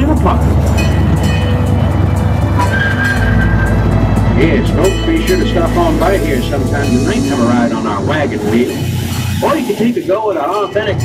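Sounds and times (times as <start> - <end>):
background music: 0.0 - 11.0
miniature train rumbling on track: 0.0 - 11.0.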